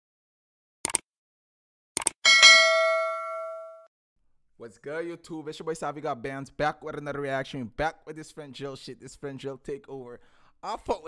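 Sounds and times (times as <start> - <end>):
notification bell ding: 2.3 - 3.9.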